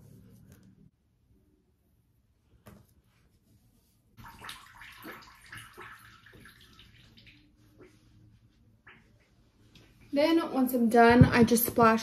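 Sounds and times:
tap water running and splashing: 4.2s - 7.6s.

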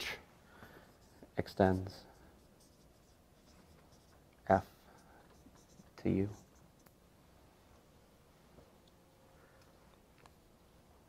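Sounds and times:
marker writing on whiteboard: 0.7s - 7.0s
man speaking: 1.4s - 2.2s, 6.0s - 6.5s.

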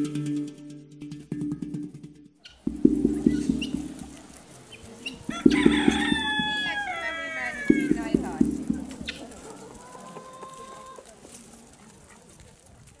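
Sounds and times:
voices: 2.7s - 13.0s
rooster crowing: 5.2s - 11.0s.

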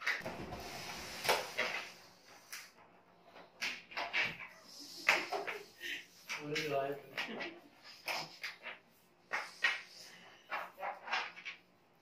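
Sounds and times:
breath puffs into balloons: 0.3s - 2.8s.

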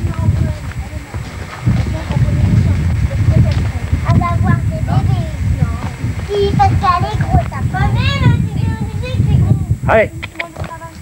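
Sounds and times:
hooves walking on dirt: 0.0s - 9.2s, 10.3s - 11.0s
low microphone rumble: 0.0s - 11.0s.

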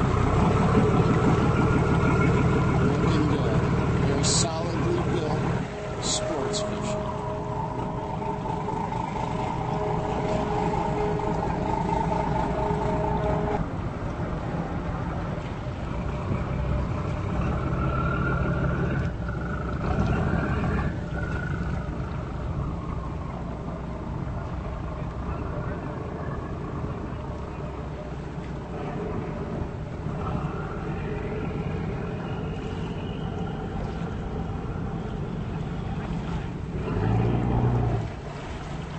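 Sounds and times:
steady whine: 0.0s - 37.1s
higher whine: 0.0s - 38.4s
boat engine running: 0.0s - 38.9s
water noise: 0.0s - 38.9s
wind: 0.0s - 38.9s.

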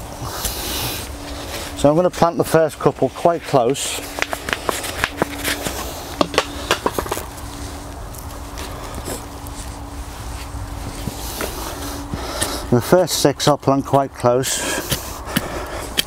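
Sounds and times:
trowel scuffing soil: 0.2s - 12.7s.

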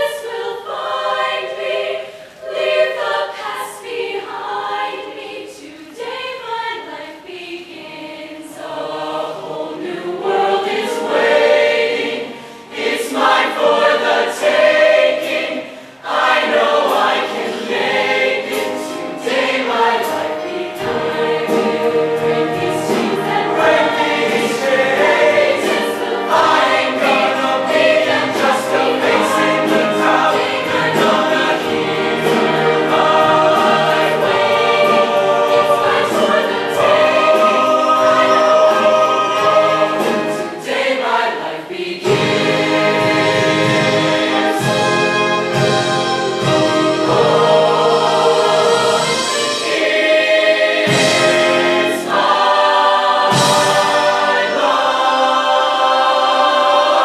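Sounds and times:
choir singing in harmony: 0.0s - 57.0s.

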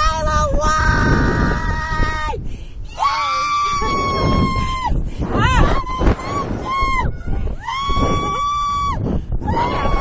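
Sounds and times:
wind rushing over microphone: 0.0s - 10.0s
woman screaming: 2.9s - 10.0s.

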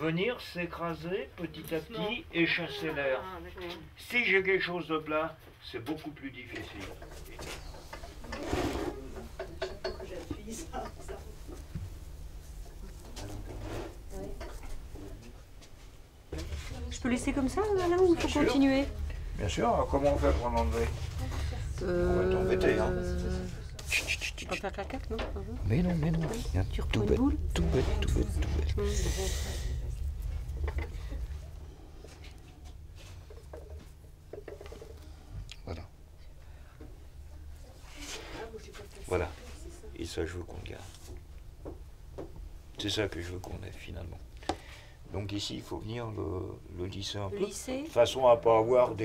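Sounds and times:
steady low hum: 6.4s - 49.0s
faint voices: 20.2s - 31.6s.

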